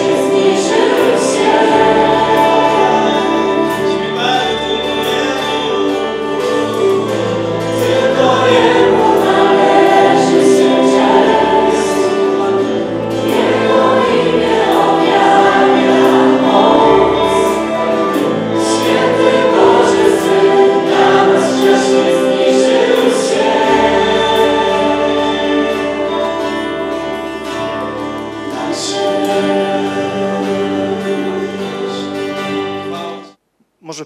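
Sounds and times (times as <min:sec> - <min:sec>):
full band playing: 0:00.0 - 0:33.2
group singing: 0:00.0 - 0:33.4
strummed acoustic guitar: 0:00.0 - 0:33.4.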